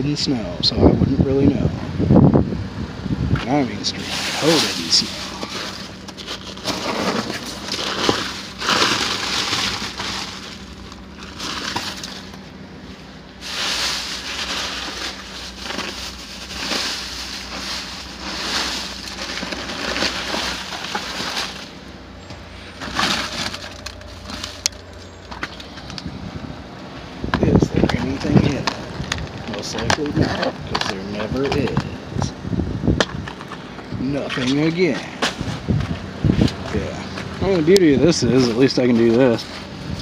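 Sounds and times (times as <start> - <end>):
rustling of plastic bags and paper: 3.7 - 26.1, 27.4 - 32.1, 33.3 - 40.0
crunching of packed snow: 3.9 - 12.5, 13.4 - 25.9.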